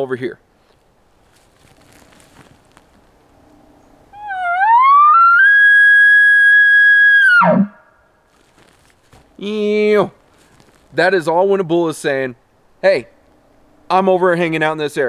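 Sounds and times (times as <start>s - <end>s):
elk bugle call whistle: 4.2s - 7.8s.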